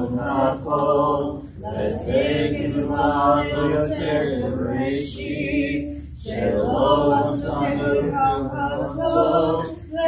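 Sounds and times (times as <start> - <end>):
congregation chanting a prayer: 0.0 - 10.0.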